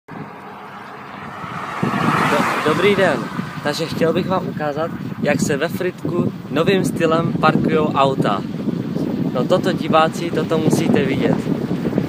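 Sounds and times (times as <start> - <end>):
oncoming car passing: 0.1 - 6.5
car engine and tyre noise: 0.1 - 12.0.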